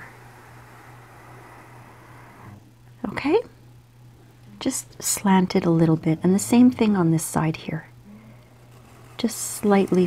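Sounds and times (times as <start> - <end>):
pencil scratching on paper: 8.6 - 10.0.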